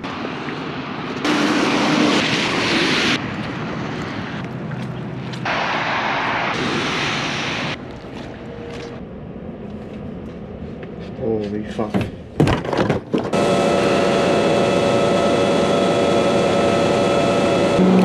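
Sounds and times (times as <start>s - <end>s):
wind: 0.0s - 18.0s.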